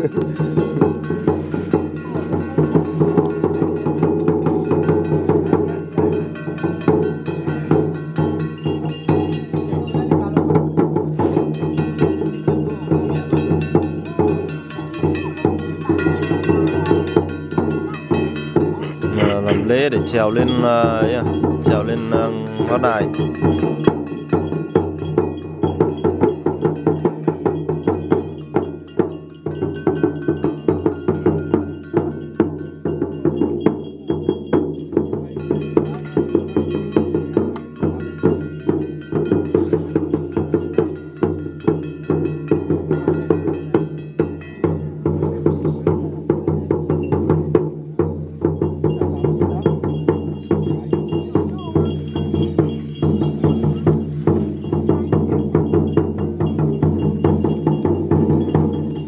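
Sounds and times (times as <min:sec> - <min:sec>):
cymbals clashing: 0:00.0 - 0:59.0
drum beating: 0:00.0 - 0:59.0
ringing metal bells: 0:00.0 - 0:59.0.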